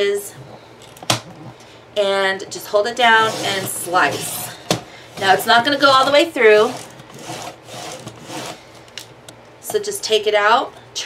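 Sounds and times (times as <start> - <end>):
paper trimmer scraping cardboard: 3.0 - 8.6.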